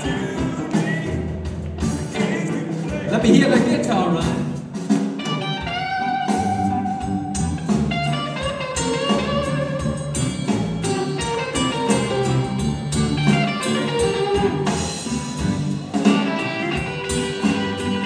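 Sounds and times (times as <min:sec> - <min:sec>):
blues-rock band playing: 0:00.0 - 0:18.0
electric guitar solo: 0:05.2 - 0:18.0.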